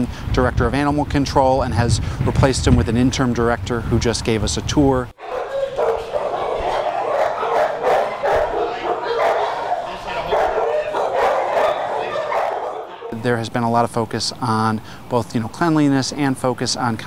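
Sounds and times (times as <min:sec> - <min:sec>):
many dogs barking: 0:05.2 - 0:13.2
people's voices: 0:05.2 - 0:14.0.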